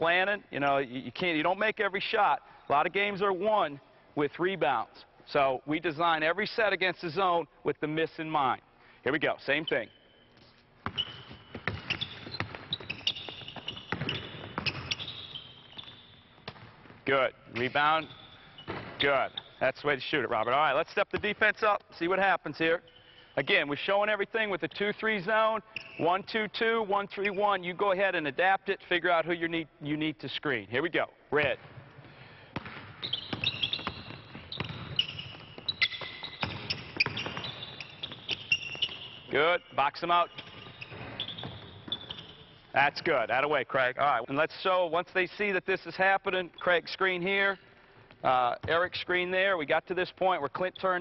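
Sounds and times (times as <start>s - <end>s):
sneakers squeaking on court floor: 9.4s - 19.6s, 25.6s - 26.1s, 31.4s - 42.8s
basketball bouncing: 10.8s - 17.0s, 18.6s - 19.0s, 31.4s - 39.3s, 40.4s - 42.4s.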